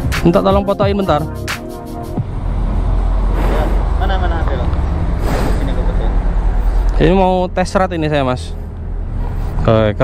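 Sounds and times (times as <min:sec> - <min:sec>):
vehicle engine rumbling: 0:00.0 - 0:10.0.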